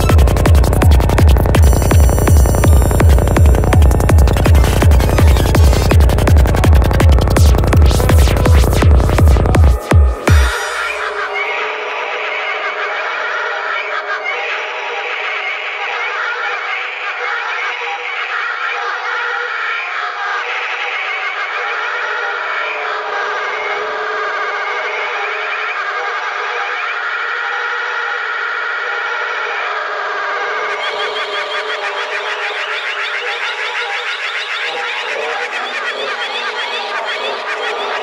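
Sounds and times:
psytrance music with warbling synthesizers: 0.0s - 38.0s.

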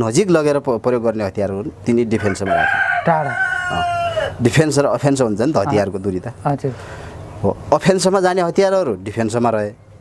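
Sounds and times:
man talking: 0.0s - 6.8s, 7.4s - 9.8s
rooster crowing: 2.1s - 4.5s.

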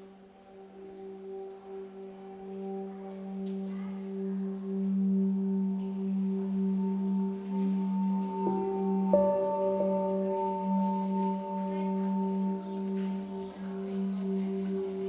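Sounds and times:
pulsing low drone music: 0.0s - 15.0s.

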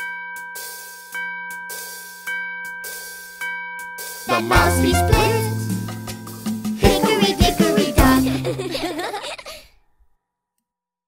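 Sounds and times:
cartoon clock chime: 0.0s - 7.5s.

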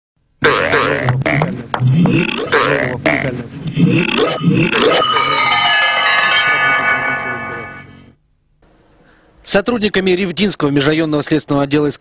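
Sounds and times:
quirky voice-like sliding sounds: 0.4s - 7.7s
held chord: 4.0s - 8.1s.

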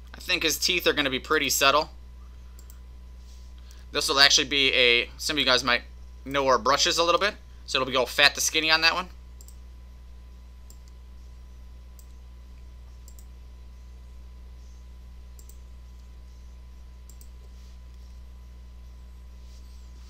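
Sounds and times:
low electrical hum: 0.0s - 20.0s
computer mouse clicks: 2.6s - 2.8s, 9.4s - 9.6s, 13.0s - 13.3s, 15.4s - 16.1s, 17.1s - 18.0s.

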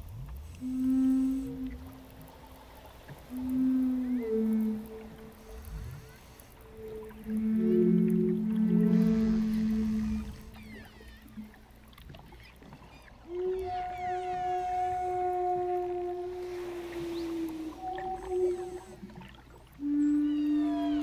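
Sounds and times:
whale song: 0.0s - 21.0s
wooden flute low notes: 0.3s - 11.6s, 13.0s - 21.0s.

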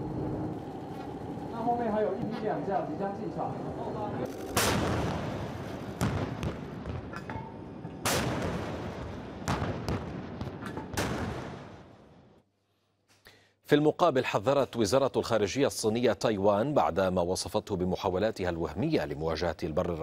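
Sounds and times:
steady rumble: 0.0s - 9.5s
naval guns booming: 4.5s - 12.1s.

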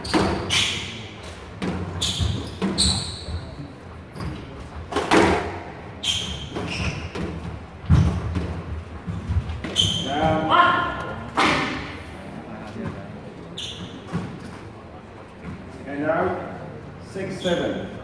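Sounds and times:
shoes squeaking on wooden floor: 0.0s - 5.3s, 5.9s - 11.1s, 12.8s - 14.7s
squash ball hit by rackets: 4.9s - 8.6s.

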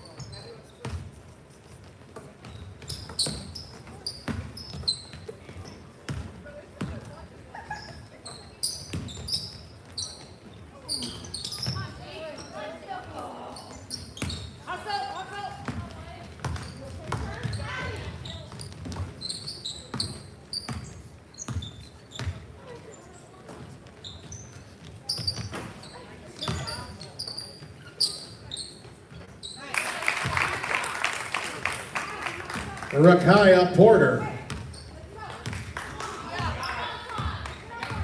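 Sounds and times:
sneaker squeaks: 0.0s - 29.8s, 33.8s - 35.6s, 36.2s - 38.0s.

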